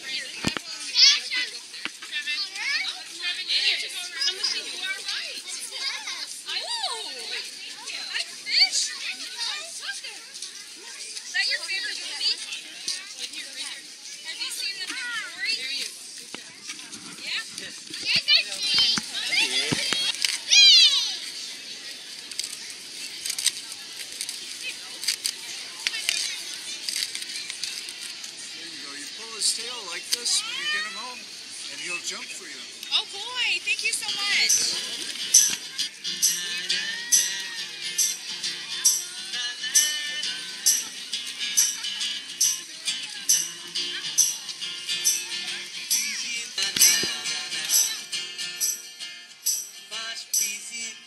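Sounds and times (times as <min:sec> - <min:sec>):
children chattering and calling out: 0:00.0 - 0:51.0.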